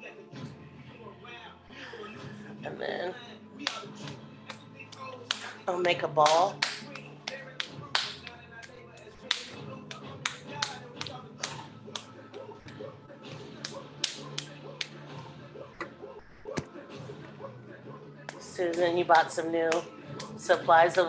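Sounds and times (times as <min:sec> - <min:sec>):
wet clay slapped between hands: 0:03.6 - 0:05.6, 0:06.2 - 0:12.5.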